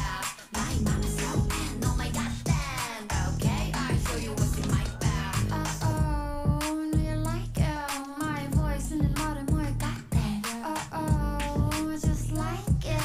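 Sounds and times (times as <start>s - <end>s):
high-pitched singing voice: 0.0s - 13.0s
upbeat pop song: 0.0s - 13.0s.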